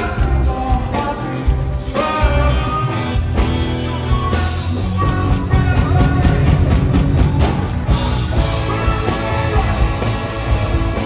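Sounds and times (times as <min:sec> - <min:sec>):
electric guitar: 0:00.0 - 0:11.0
live rock band playing: 0:00.0 - 0:11.0.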